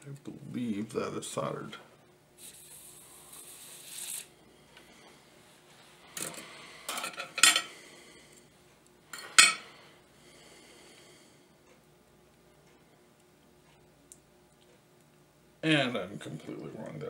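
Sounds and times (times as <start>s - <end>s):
short soft hiss: 2.4s - 4.4s.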